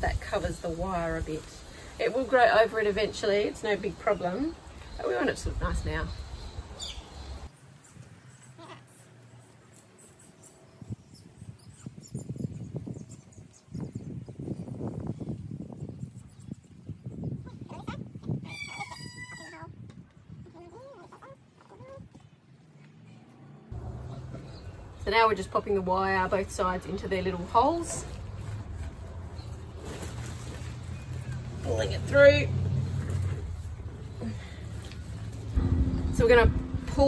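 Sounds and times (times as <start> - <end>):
rustling of fern fronds: 0.0 - 5.6, 27.3 - 35.6.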